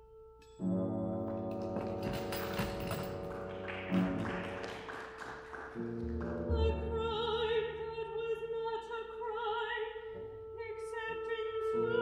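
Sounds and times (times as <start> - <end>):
light percussion strikes: 1.2 - 4.7.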